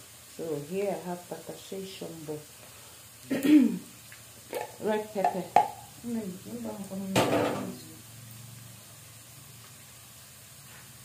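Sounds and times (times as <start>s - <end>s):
onions sizzling in oil: 0.0s - 11.0s.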